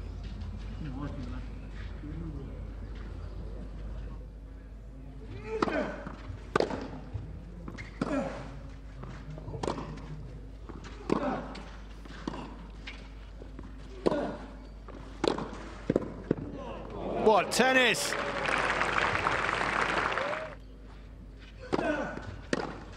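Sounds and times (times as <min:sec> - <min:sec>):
racket striking tennis ball: 0:21.7 - 0:22.8.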